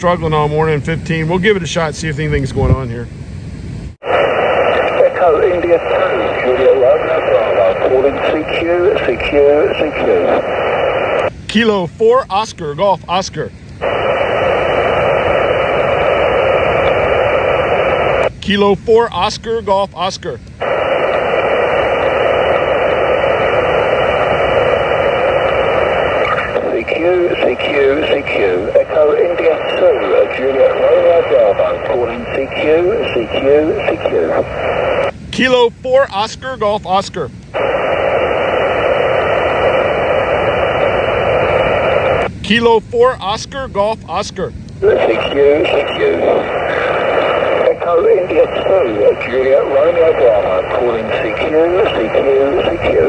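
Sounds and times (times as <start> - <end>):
radio band noise hiss: 0.0 - 3.3, 3.9 - 53.0.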